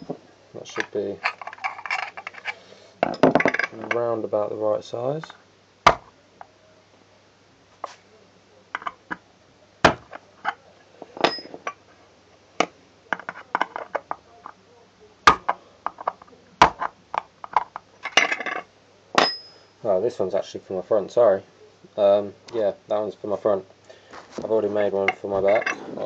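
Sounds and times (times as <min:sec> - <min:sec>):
metal lid clinking on screwdriver: 0:01.2 - 0:02.5.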